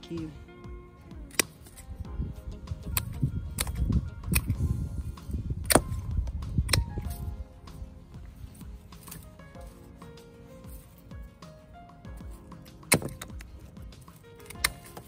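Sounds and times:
background music: 0.0 - 15.0
pruning shears snipping stems: 1.2 - 2.0, 2.8 - 4.6, 5.6 - 9.5, 12.5 - 15.0.

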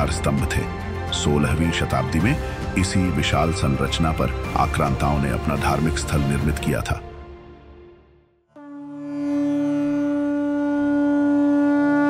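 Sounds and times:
long held wind instrument note: 8.6 - 12.0.

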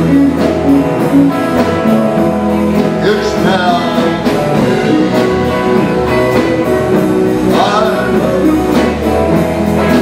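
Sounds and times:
country band music: 0.0 - 10.0
person singing: 2.7 - 9.1.

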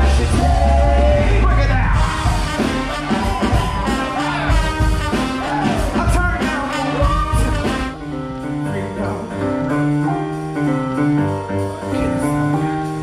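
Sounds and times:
man singing lead vocals: 0.0 - 2.7, 5.5 - 10.0
held keyboard chords: 0.0 - 13.0
live pop-rock band music: 0.0 - 13.0.

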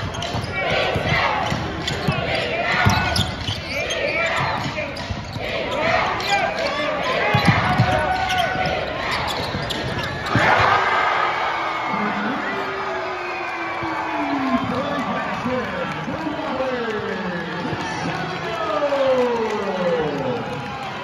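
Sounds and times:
shouting and chatter of crowd: 0.0 - 21.0
basketball dribbling on hardwood: 7.3 - 8.2.

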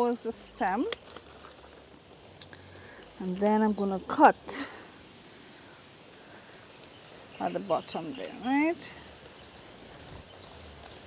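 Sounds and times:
leaves rustling: 0.0 - 11.0.

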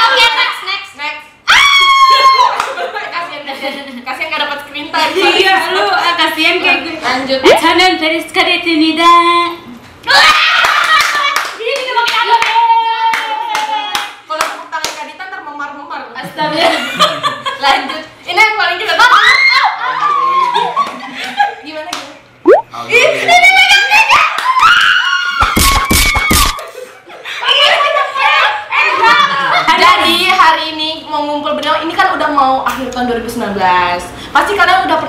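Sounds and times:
people clapping hands: 2.5 - 2.9, 10.6 - 15.0, 25.4 - 26.6
loud slaps: 25.4 - 26.6.

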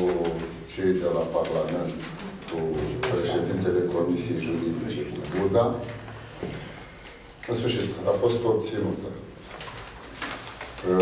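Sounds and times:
man saying uh: 0.0 - 6.0.

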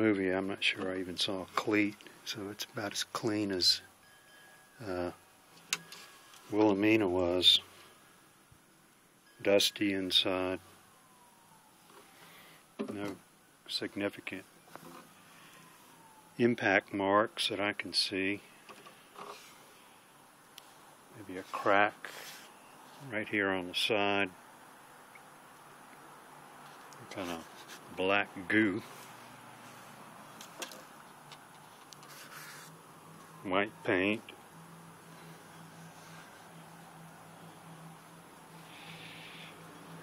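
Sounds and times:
man speaking: 0.0 - 3.9, 4.8 - 5.2, 6.5 - 7.7, 9.4 - 10.6, 12.8 - 14.4, 16.4 - 18.4, 21.2 - 22.1, 23.0 - 24.4, 27.0 - 28.9, 33.4 - 34.3
faint hiss: 17.0 - 30.8, 38.4 - 39.8
phone handling clicks and rubs: 30.3 - 32.8.

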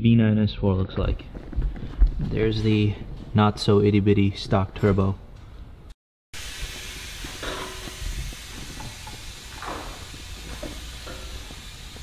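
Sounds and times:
car repair shop background noise: 6.4 - 12.0.

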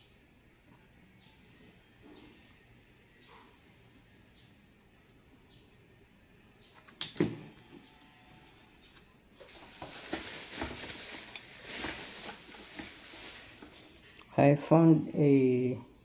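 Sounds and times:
rustling and scraping: 8.3 - 14.3.

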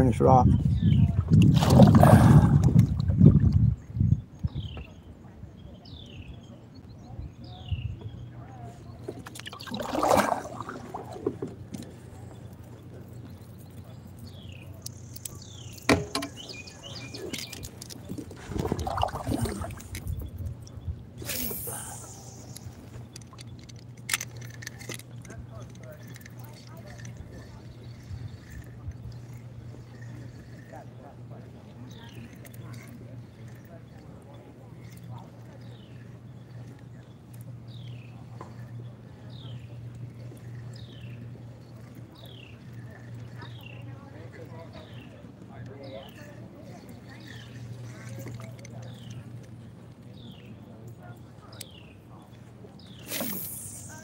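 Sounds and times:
steady low hum: 0.0 - 54.0
water splashing against kayak hull: 1.2 - 3.6, 8.7 - 12.6, 15.3 - 20.4.

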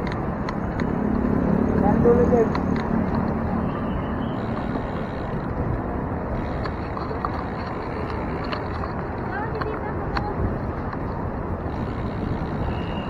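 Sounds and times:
bicycle clicks and rattles: 0.0 - 1.5, 4.4 - 13.0
wind noise: 0.0 - 13.0.

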